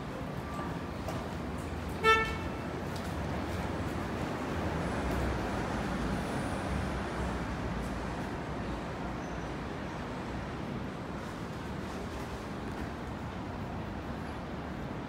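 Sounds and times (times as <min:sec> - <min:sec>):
low rumble of street traffic: 0:00.0 - 0:15.0
car horn beep: 0:02.0 - 0:02.6.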